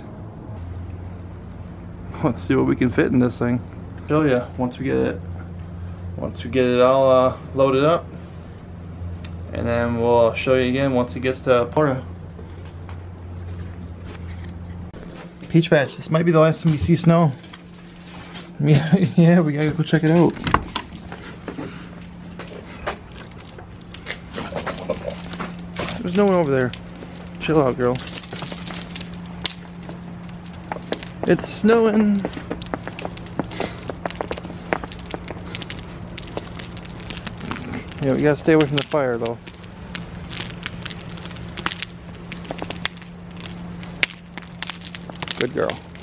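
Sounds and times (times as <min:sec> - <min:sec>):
steady low hum: 0:00.0 - 0:46.0
fire crackling and popping: 0:14.9 - 0:46.0.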